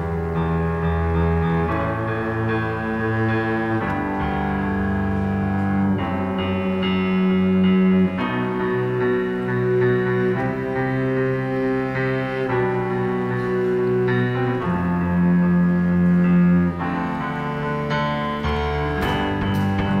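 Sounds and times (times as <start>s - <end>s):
string orchestra bowed chords: 0.0s - 20.0s.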